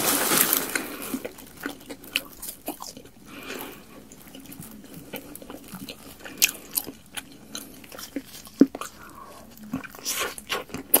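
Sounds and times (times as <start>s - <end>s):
biting and chewing food: 0.0s - 11.0s.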